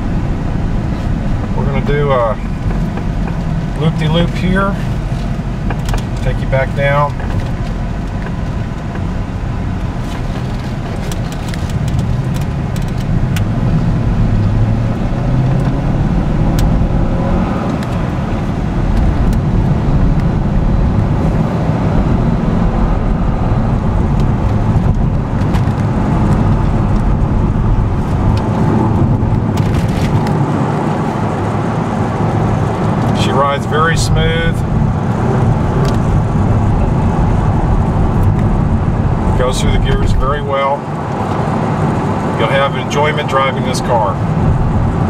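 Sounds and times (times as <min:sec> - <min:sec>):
car engine running: 0:00.0 - 0:45.0
tyre and road noise: 0:00.0 - 0:45.0.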